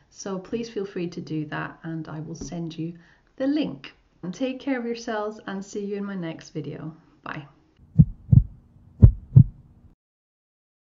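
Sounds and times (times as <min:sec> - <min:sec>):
low steady hum: 0:07.8 - 0:10.0
deep thumps: 0:07.9 - 0:09.6.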